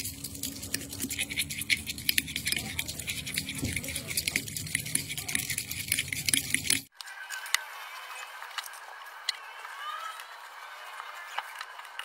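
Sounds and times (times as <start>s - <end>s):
metal spoon scraping glass bowl: 0.0s - 6.9s.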